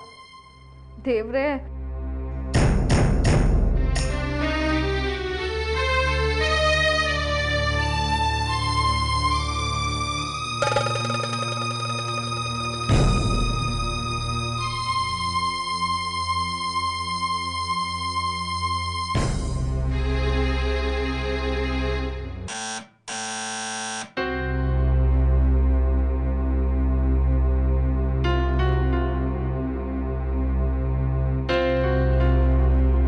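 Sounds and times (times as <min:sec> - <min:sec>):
mobile phone buzzing ring: 0:10.6 - 0:12.2, 0:22.5 - 0:24.2
soft music with deep bass: 0:24.2 - 0:33.0.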